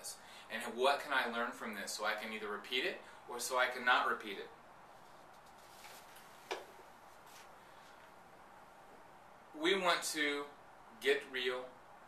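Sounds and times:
paper rustling: 4.9 - 7.5.

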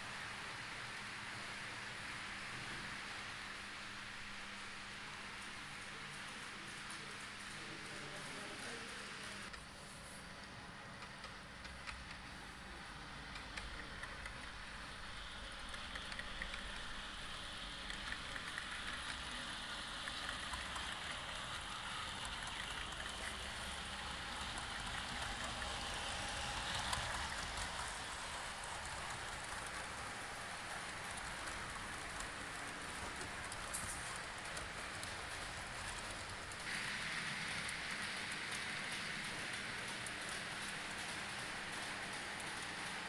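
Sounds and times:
model train wheels rattling on rails: 10.4 - 43.0
train motor hum: 11.0 - 43.0.

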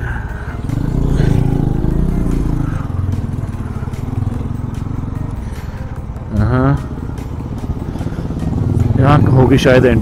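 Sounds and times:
motorcycle engines rumbling: 0.0 - 10.0.

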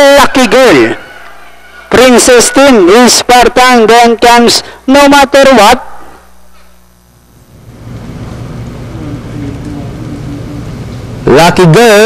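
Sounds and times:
background noise with low hum: 0.0 - 12.0.

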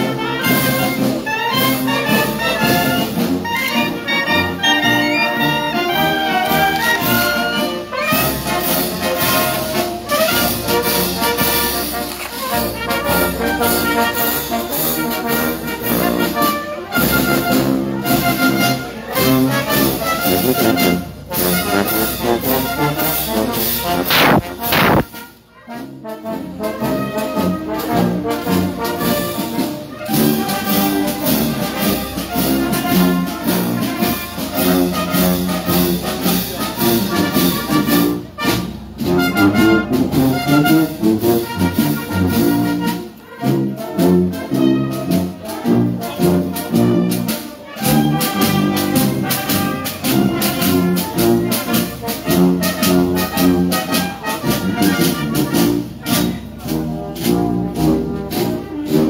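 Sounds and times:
brass band playing a march: 0.0 - 59.0
drums: 0.0 - 59.0.

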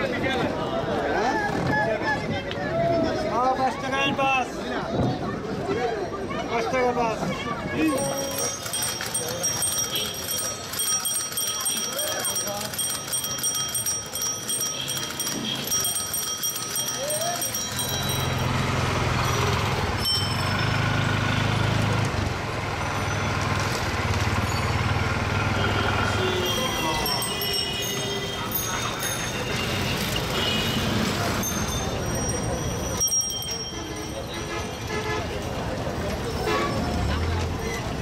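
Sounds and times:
busy street traffic: 0.0 - 38.0
bicycle bell trilling: 7.8 - 19.4, 20.0 - 21.0, 26.2 - 35.0.

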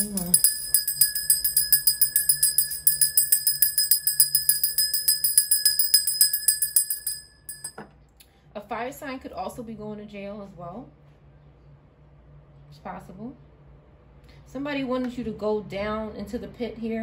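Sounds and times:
small metal bell ringing rapidly: 0.0 - 7.8
light metal clinks: 0.0 - 7.9.

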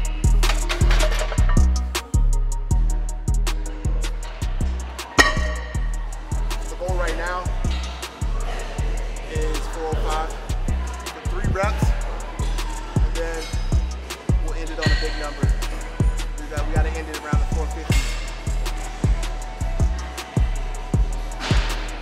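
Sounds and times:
beat with deep bass: 0.0 - 22.0.

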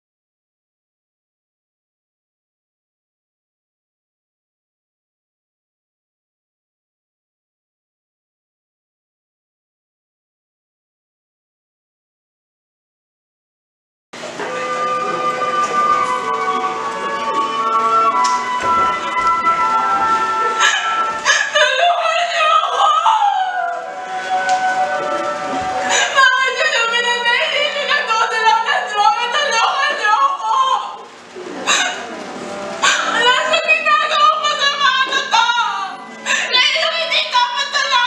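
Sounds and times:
sustained music chords: 14.2 - 21.3, 31.2 - 36.6
girl sobbing: 20.5 - 24.4, 25.8 - 26.6, 36.2 - 37.1
sharp noisy gasps: 20.6 - 21.6, 25.8 - 26.2, 31.7 - 32.1, 36.2 - 36.5.

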